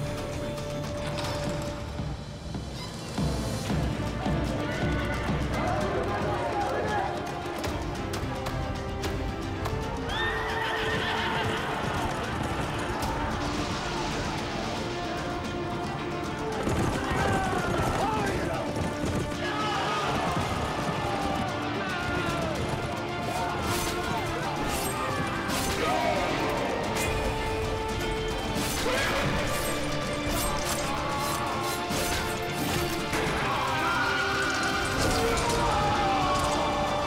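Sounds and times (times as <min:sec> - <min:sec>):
dramatic trailer music: 0:00.0 - 0:37.0
horse whinnying: 0:10.1 - 0:12.1
battle crashing blows and clashes: 0:16.6 - 0:37.0.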